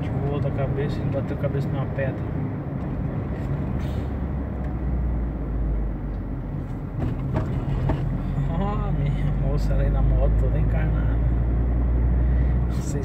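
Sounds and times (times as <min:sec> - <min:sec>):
car engine rumble: 0:00.0 - 0:13.0
tyres on road: 0:00.0 - 0:13.0.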